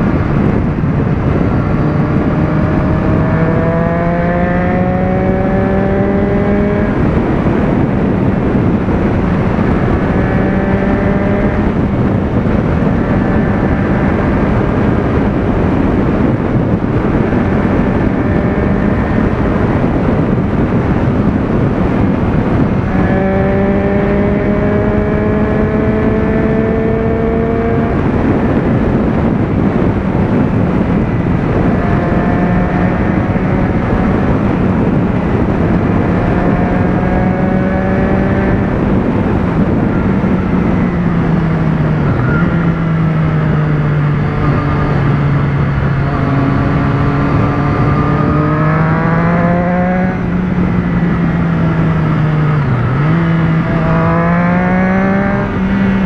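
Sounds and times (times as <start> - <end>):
motorcycle engine at speed: 0.0 - 56.0
rushing wind: 0.0 - 56.0.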